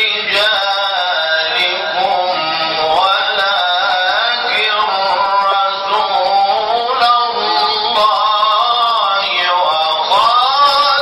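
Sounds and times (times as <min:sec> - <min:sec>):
man chanting melodic recitation: 0:00.0 - 0:11.0.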